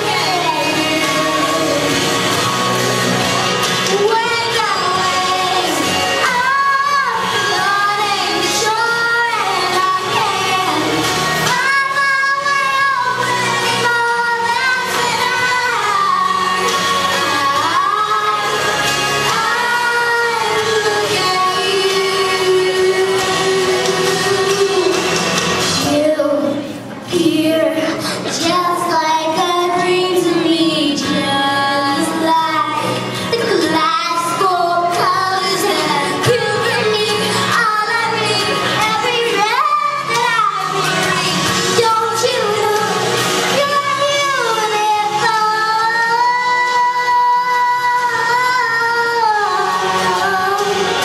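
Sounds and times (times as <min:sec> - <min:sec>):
backing music: 0:00.0 - 0:51.0
girl singing into microphone: 0:00.0 - 0:51.0.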